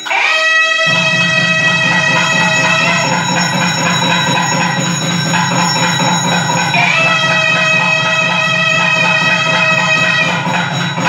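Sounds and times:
reedy wind instrument tone: 0.0 - 11.0
low rumble: 0.9 - 11.0.

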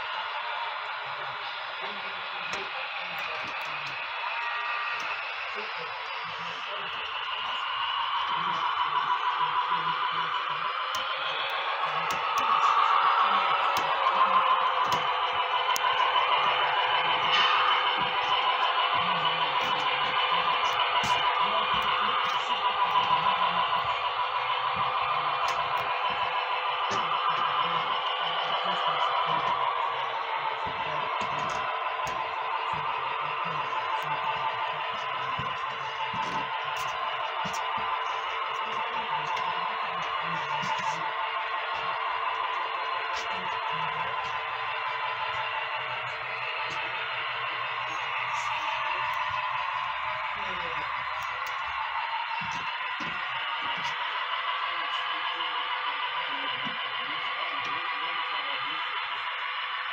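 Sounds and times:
model train drone: 0.0 - 59.9.

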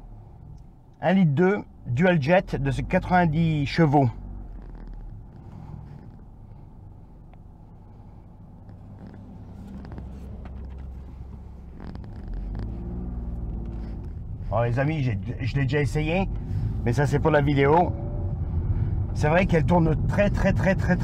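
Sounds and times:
car engine from inside cabin: 0.0 - 21.0.

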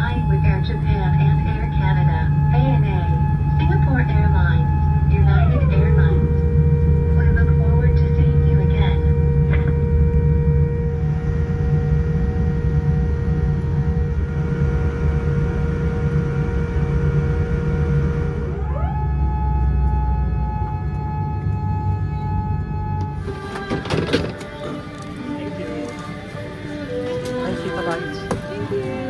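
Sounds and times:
aircraft cabin rumble: 0.0 - 29.0
constant engine whine: 0.0 - 29.0.

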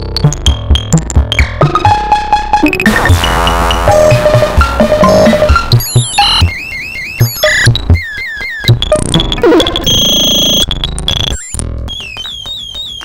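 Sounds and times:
synthesizer falling chirps: 1.6 - 13.0.

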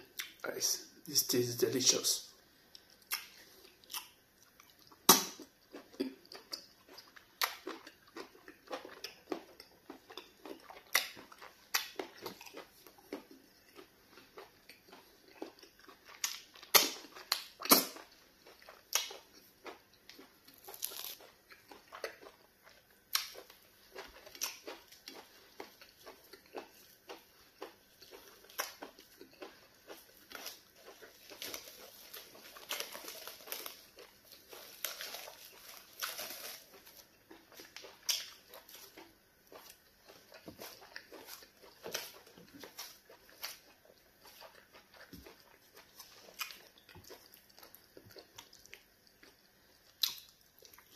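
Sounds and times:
chewing soft food: 0.0 - 0.5, 2.3 - 50.9.

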